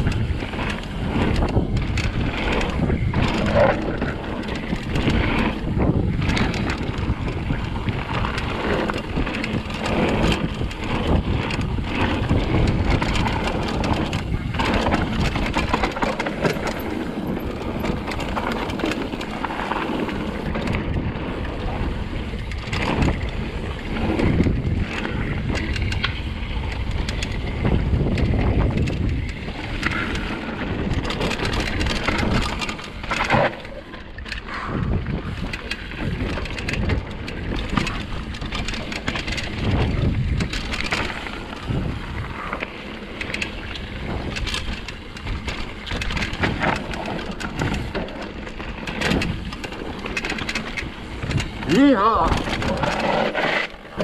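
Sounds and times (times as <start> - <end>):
wind on microphone: 0.0 - 32.6, 33.6 - 54.0
bike tyres crunching on gravel: 0.0 - 33.8, 35.2 - 54.0
bike rattling over bumps: 0.0 - 54.0.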